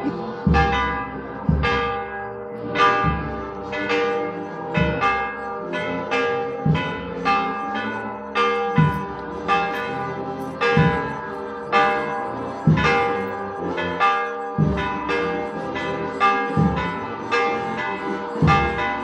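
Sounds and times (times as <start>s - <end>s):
church bells ringing: 0.0s - 19.0s.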